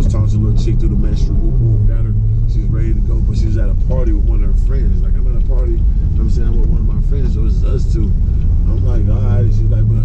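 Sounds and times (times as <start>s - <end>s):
car engine drone: 0.0s - 10.0s
man talking: 0.0s - 10.0s
road rumble: 0.0s - 10.0s.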